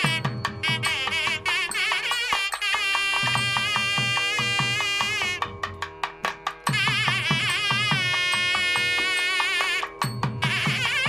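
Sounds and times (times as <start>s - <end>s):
nadaswaram holding a note: 0.0s - 11.0s
thavil drum strokes: 0.0s - 11.0s.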